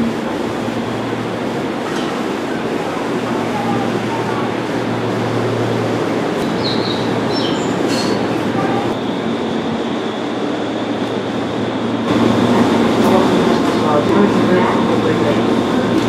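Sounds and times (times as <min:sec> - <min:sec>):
train wheels rumbling: 0:00.0 - 0:16.0.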